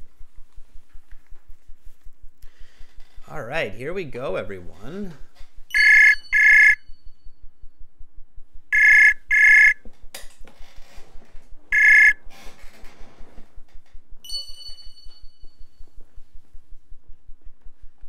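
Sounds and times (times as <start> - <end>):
ringback double beeps: 5.7 - 6.8, 8.8 - 9.8, 11.7 - 12.2
high steady tone: 5.7 - 7.7, 8.7 - 9.8, 11.7 - 12.2.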